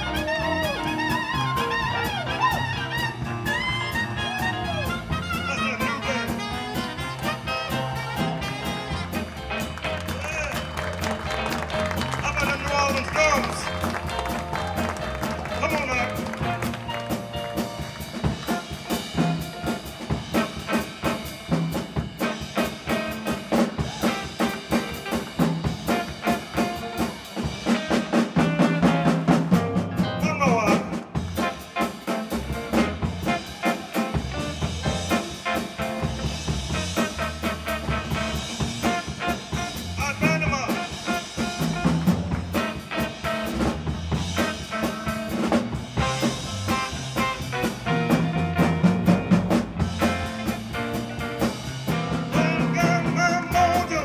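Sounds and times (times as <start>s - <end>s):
drum kit beat: 0.0s - 54.0s
horns: 0.0s - 54.0s.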